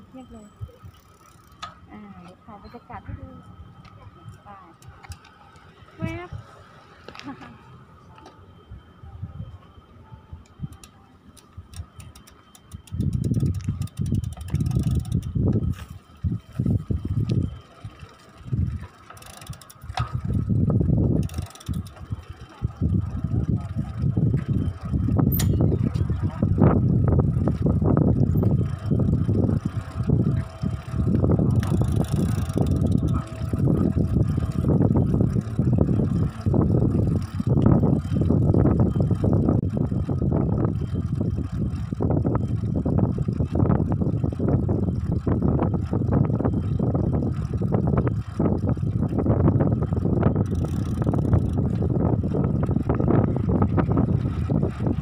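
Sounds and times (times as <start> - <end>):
wind buffeting microphone: 11.5 - 55.0.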